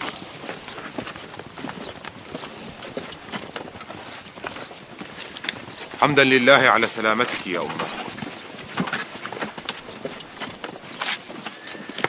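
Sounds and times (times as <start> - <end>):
hooves clopping on hard ground: 0.0 - 12.0.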